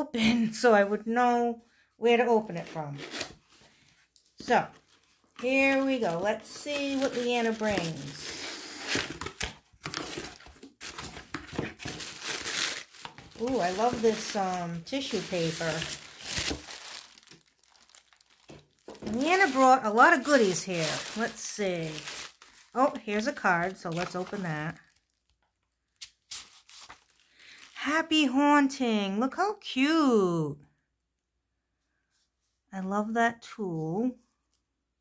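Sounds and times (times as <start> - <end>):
tissue paper crinkling: 3.0 - 25.4, 26.0 - 27.9.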